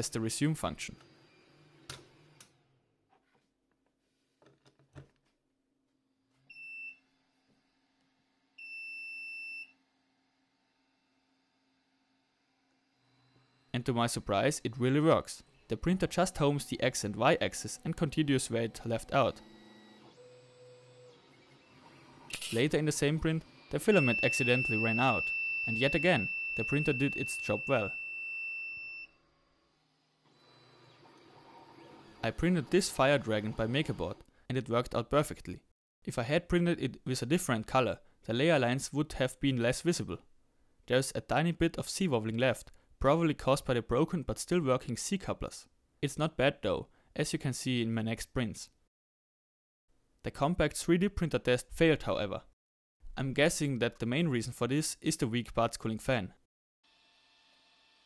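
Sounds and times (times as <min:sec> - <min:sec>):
low hum of printer running: 0:18.7 - 0:22.3
printer buzzer beeping: 0:19.3 - 0:21.8, 0:23.7 - 0:29.1.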